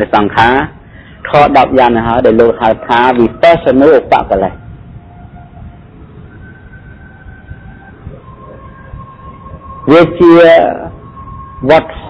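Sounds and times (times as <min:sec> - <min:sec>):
man speaking: 0:00.0 - 0:04.6, 0:09.8 - 0:11.0, 0:11.6 - 0:12.0
faint whistle-like tone: 0:03.0 - 0:12.0.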